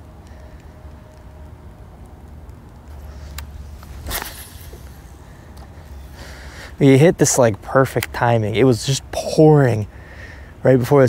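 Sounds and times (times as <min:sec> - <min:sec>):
low steady rumble: 0:00.0 - 0:11.0
short rustle: 0:02.9 - 0:06.8
fishing reel handling noise: 0:03.0 - 0:06.2.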